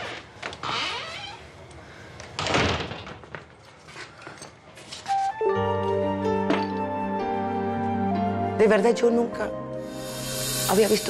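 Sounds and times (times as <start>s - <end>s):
door creaking: 0.0s - 1.7s.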